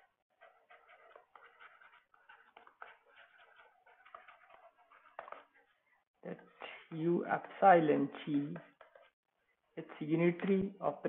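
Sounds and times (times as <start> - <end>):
stylus scratching on tablet: 0.0 - 6.6, 8.1 - 9.2.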